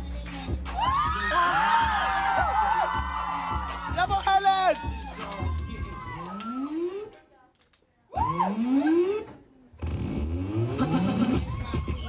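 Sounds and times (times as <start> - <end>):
beat-driven music: 0.0 - 7.1
engine rev sound effect: 8.3 - 11.6.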